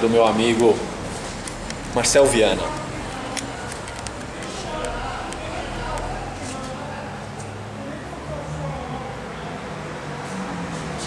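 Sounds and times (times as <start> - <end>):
soft clicks: 2.7 - 6.1.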